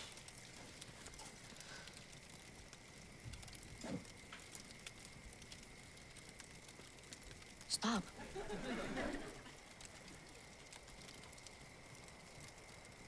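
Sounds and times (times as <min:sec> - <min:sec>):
campfire crackling: 0:00.0 - 0:13.0.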